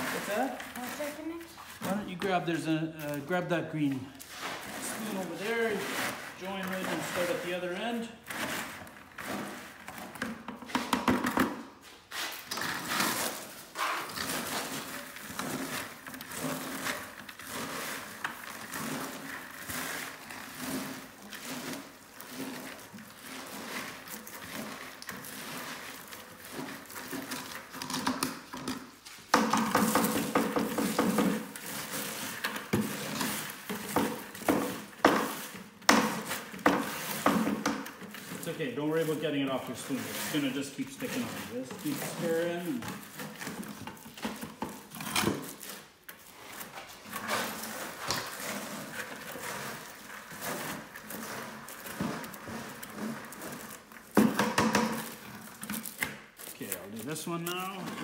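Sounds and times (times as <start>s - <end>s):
spoons scraping sticky mix: 0.0s - 10.6s, 11.8s - 58.0s
spoons knocking plastic pail: 54.2s - 55.2s.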